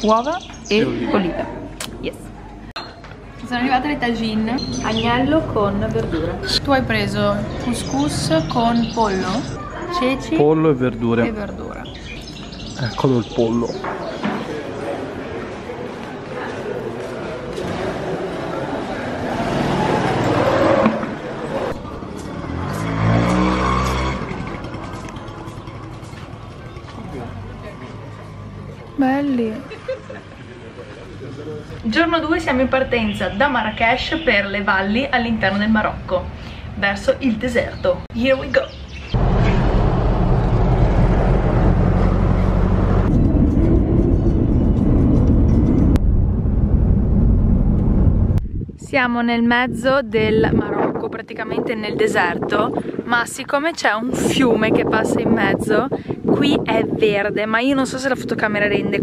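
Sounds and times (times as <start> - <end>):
market crowd chatter: 0.0 - 38.9
car engine and tyre noise: 16.8 - 29.0, 39.2 - 48.5
moped engine revving: 19.0 - 28.2.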